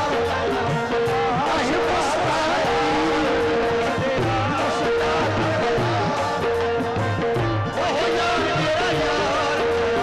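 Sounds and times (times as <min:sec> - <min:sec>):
harmonium holding steady notes: 0:00.0 - 0:10.0.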